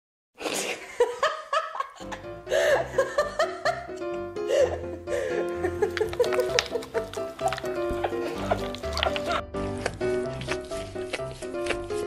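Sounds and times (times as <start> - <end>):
person laughing: 0.6 - 9.6
background music with bass line: 3.8 - 12.0.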